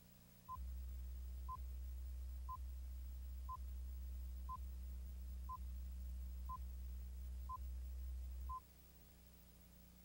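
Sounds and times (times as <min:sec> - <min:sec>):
low hum: 0:00.4 - 0:10.0.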